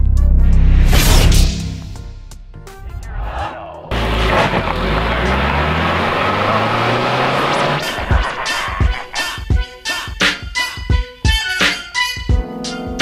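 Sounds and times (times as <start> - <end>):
car engine running: 3.9 - 9.0
music with a beat: 7.9 - 13.0.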